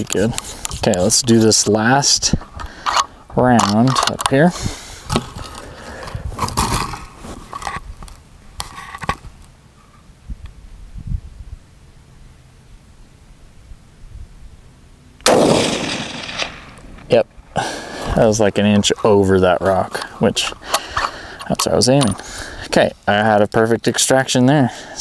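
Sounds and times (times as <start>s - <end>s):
rifle shot echoing: 15.2s - 17.2s.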